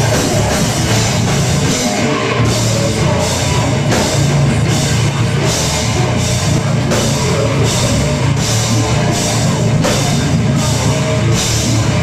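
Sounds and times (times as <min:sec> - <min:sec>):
heavy rock band playing: 0:00.0 - 0:12.0.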